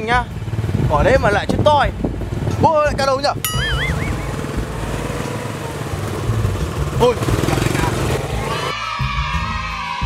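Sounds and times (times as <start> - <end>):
motor scooter engine running: 3.4 - 8.7.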